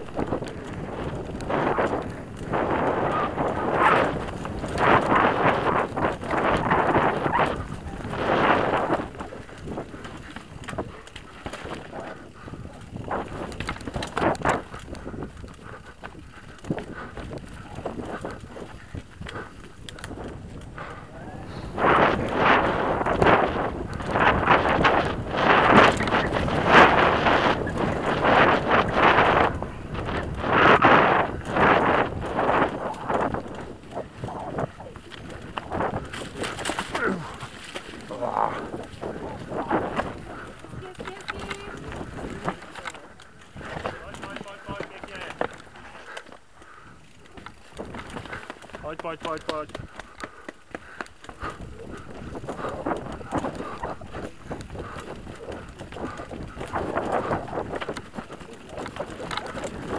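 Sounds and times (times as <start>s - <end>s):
bike rattling over bumps: 0.0s - 59.9s
bike tyres on dirt and leaves: 0.0s - 59.9s
wind buffeting microphone: 0.0s - 59.9s.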